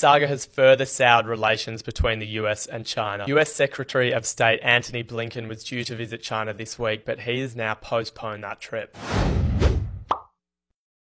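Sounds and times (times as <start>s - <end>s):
whoosh with low rumble: 9.0s - 10.1s.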